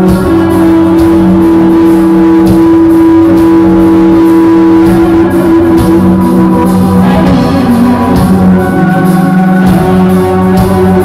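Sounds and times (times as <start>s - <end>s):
electric guitar sustained note: 0.0s - 11.0s
hard rock band playing live: 0.0s - 11.0s.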